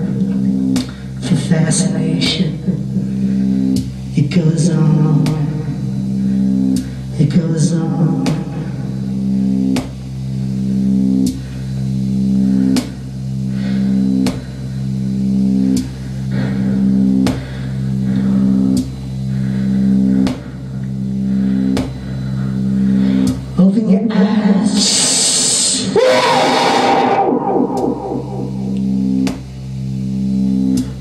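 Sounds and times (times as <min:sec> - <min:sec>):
low buzzing electronic drone: 0:00.0 - 0:31.0.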